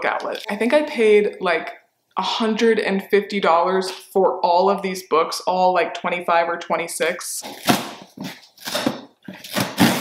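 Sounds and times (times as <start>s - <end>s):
cardboard tear strip ripping: 7.4s - 10.0s.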